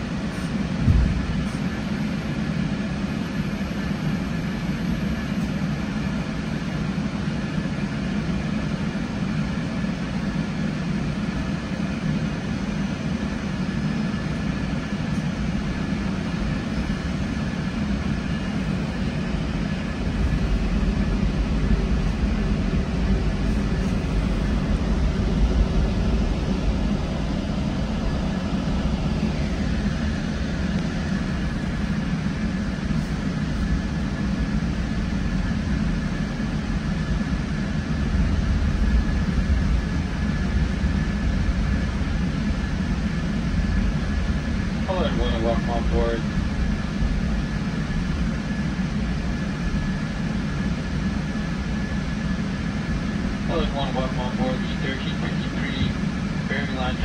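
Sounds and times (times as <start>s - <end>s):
thin steady whine: 0.0s - 57.0s
train rumble from inside coach: 0.0s - 57.0s.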